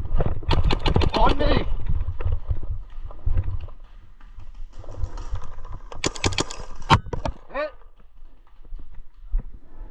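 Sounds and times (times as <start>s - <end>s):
paintball marker shots: 6.0s - 7.1s.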